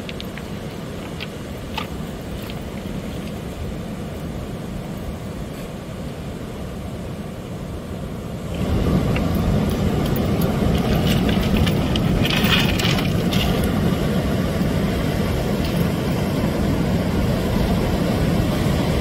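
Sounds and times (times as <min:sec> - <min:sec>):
ocean surf rushing: 0:00.0 - 0:19.0
footsteps on beach pebbles: 0:08.6 - 0:14.8.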